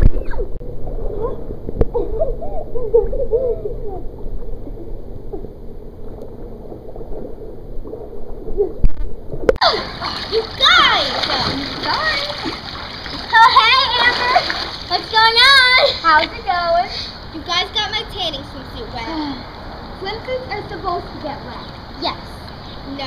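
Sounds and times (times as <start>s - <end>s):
girls squealing and shouting: 9.6s - 16.1s
children splashing water: 9.6s - 17.8s.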